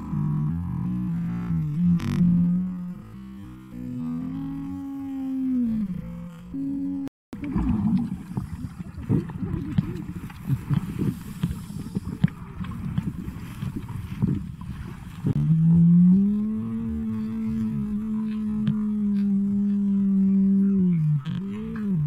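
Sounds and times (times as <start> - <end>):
droning hum: 0.0 - 22.0
underwater rumble and crackle: 0.0 - 22.0.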